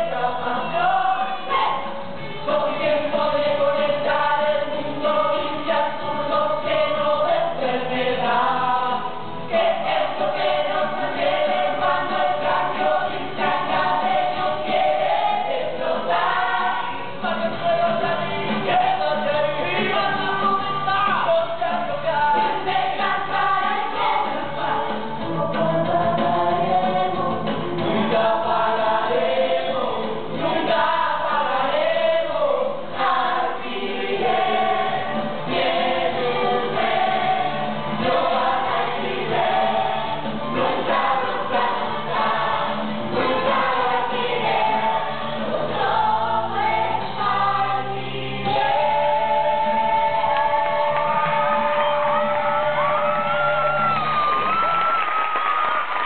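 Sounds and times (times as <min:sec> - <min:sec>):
band accompaniment: 0:09.2 - 0:32.1, 0:32.8 - 0:54.7.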